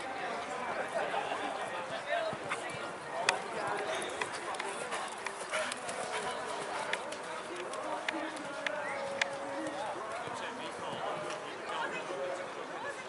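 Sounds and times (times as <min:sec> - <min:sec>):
murmur of spectators: 0:00.0 - 0:13.0
horse hoofbeats on sand: 0:01.8 - 0:11.4.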